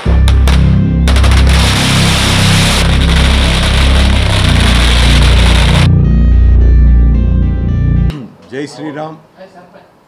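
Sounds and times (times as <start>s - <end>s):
firecrackers crackling: 0.0s - 5.9s
music with heavy bass: 0.0s - 8.1s.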